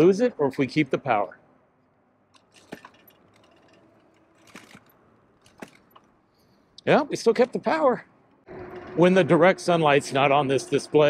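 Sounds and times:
bike rattling and clinking: 2.3 - 6.5.

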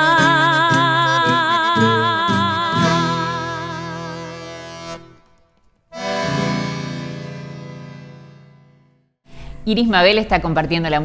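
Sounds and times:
accordion and guitar chords: 0.0 - 9.1.

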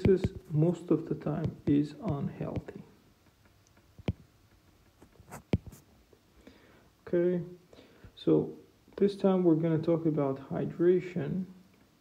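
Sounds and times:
stylus tapping on tablet screen: 0.0 - 0.5, 1.2 - 5.8.

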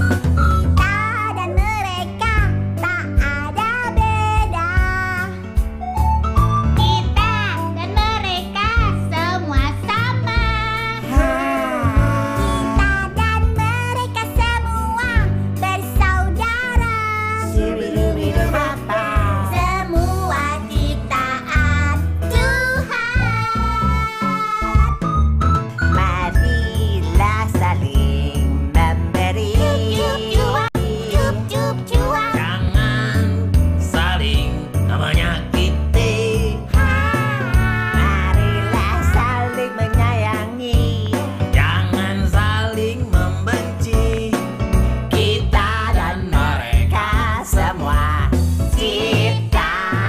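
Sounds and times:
backing band with bass and beat: 0.0 - 26.2, 27.2 - 50.0
person singing: 10.8 - 15.2, 16.4 - 24.8, 26.0 - 44.5, 45.1 - 50.0
children singing: 11.0 - 13.2, 48.8 - 50.0.

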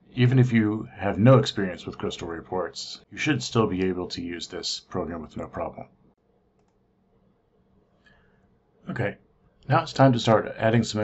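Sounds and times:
faint clicks: 6.6 - 6.8.

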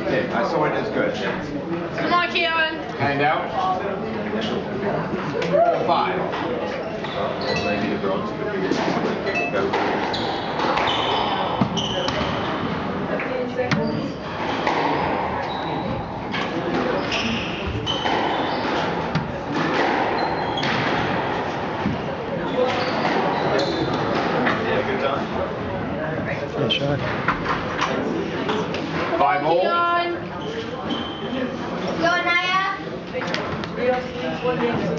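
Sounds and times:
spectators talking quietly: 0.0 - 34.9
shoe squeaks on wooden floor: 6.9 - 8.0, 10.0 - 12.7, 13.7 - 14.5, 15.4 - 16.2, 16.9 - 19.0, 20.1 - 20.8, 22.5 - 24.2, 30.4 - 31.5
squash ball hits: 9.7 - 12.6.

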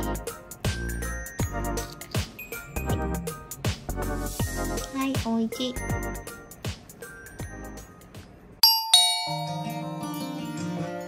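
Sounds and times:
background music: 0.0 - 11.0
two-note chime: 8.6 - 10.8.

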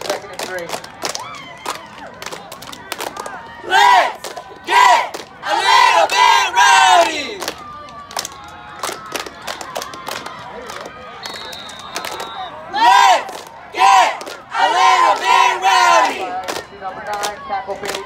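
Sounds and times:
squad shouting a cheer: 3.3 - 7.5, 12.4 - 18.0
sharp claps: 7.4 - 12.4.

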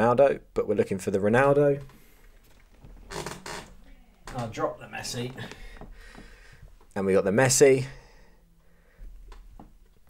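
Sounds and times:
chair rustle and creak: 1.8 - 6.9.

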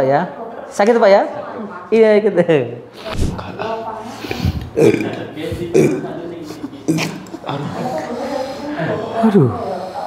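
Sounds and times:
man's throaty vocal sounds: 4.3 - 7.9.

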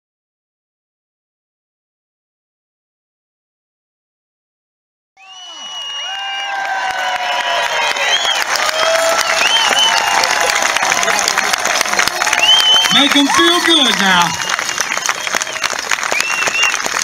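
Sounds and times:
crowd applauding: 5.2 - 17.0
crowd cheering and whooping: 5.2 - 17.0.

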